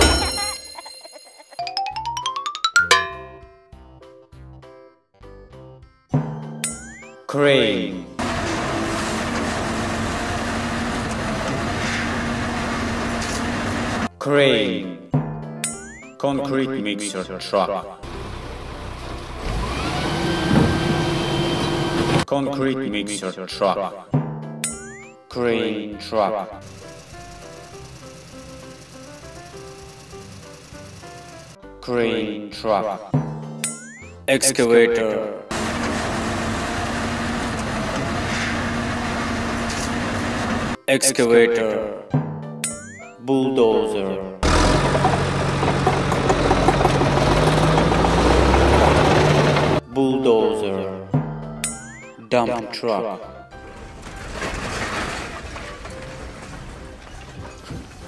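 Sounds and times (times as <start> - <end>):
crane engine rumbling: 8.2 - 14.1, 18.0 - 22.3, 26.6 - 31.6, 35.5 - 40.8, 44.4 - 49.8.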